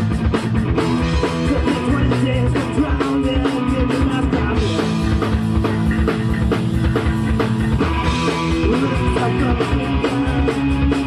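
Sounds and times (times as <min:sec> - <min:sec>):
bass guitar: 0:00.0 - 0:11.0
electric guitar: 0:00.0 - 0:11.0
fast drum beat: 0:00.0 - 0:11.0.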